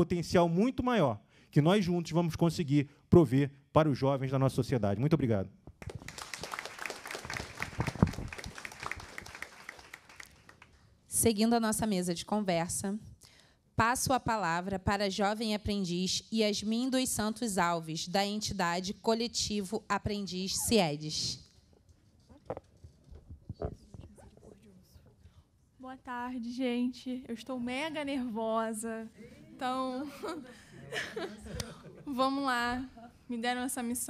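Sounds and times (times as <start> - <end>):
audience applause: 5.8 - 10.7
microphone handling knocks and rubs: 22.4 - 24.3.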